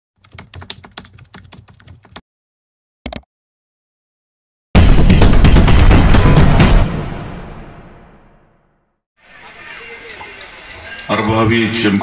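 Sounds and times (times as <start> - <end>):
computer keyboard typing: 0.2 - 2.2.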